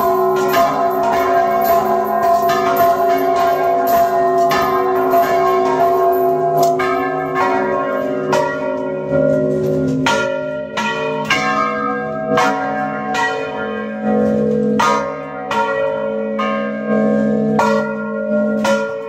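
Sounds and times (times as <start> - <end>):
church bells pealing: 0.0 - 19.0.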